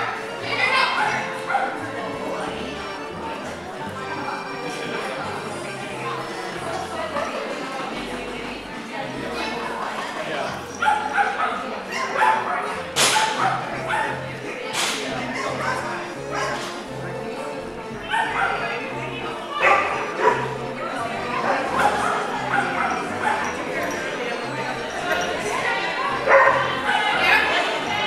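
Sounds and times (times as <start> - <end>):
background music: 0.0 - 28.0
dog barking: 0.9 - 1.8, 10.7 - 14.2, 15.4 - 16.7, 18.1 - 18.7, 19.6 - 20.5, 21.4 - 23.9, 26.2 - 27.5.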